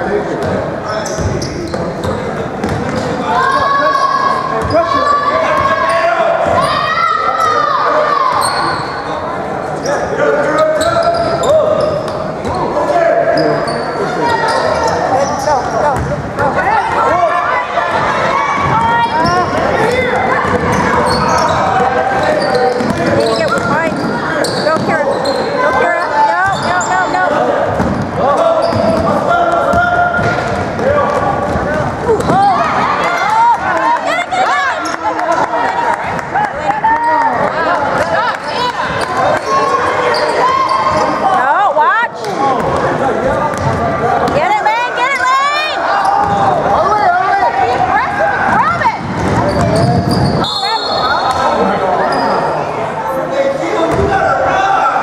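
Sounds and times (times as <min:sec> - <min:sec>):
echoing voices: 0:00.0 - 0:55.0
basketball bouncing on hardwood floor: 0:02.6 - 0:02.8.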